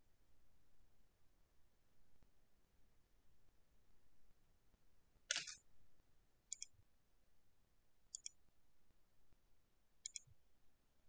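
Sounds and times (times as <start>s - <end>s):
burst of sharp clicks: 5.3s - 5.6s.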